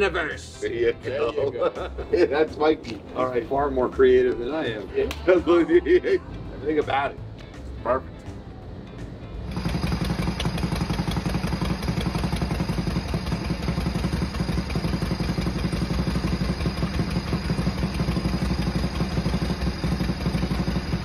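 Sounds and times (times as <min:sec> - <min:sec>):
motorcycle engine idling: 0:08.3 - 0:21.0.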